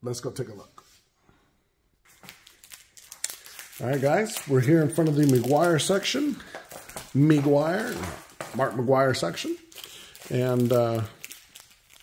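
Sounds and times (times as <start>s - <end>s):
man speaking: 0.0s - 0.8s, 3.8s - 6.5s, 7.1s - 11.2s.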